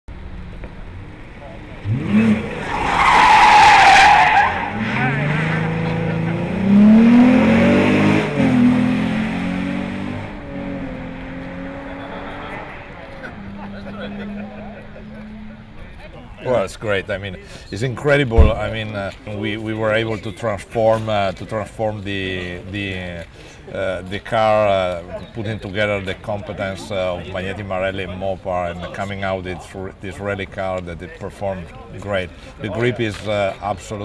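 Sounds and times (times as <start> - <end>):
car engine revving: 0.9 - 15.9
tire squeal: 1.9 - 6.1.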